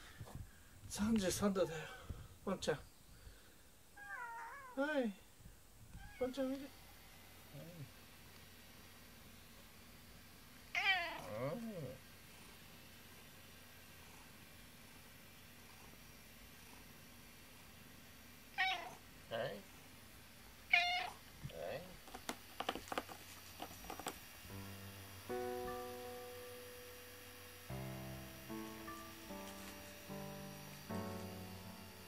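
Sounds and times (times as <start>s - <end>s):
cat meowing: 4.0s - 4.8s, 5.9s - 6.4s, 10.7s - 12.0s, 18.5s - 19.0s, 20.7s - 21.2s.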